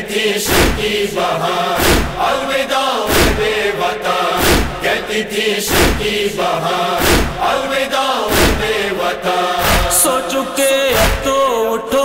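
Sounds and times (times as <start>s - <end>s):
male voices chanting in chorus: 0.0s - 12.0s
deep drum beat: 0.5s - 1.0s, 4.4s - 4.9s, 5.7s - 6.3s, 7.0s - 7.5s.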